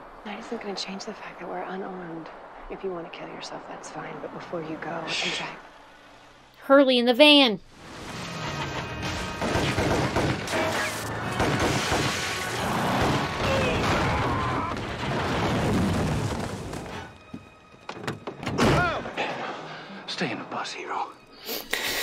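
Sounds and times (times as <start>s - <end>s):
people speaking dialogue: 0.3s - 5.8s, 6.6s - 7.7s, 20.0s - 21.2s
tense dramatic score: 7.6s - 21.2s
action thuds and bangs: 9.0s - 17.1s, 18.0s - 19.0s.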